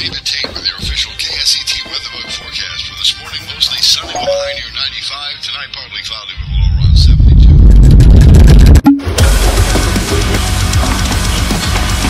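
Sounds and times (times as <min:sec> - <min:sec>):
loud distorted low rumble: 0:06.4 - 0:10.1.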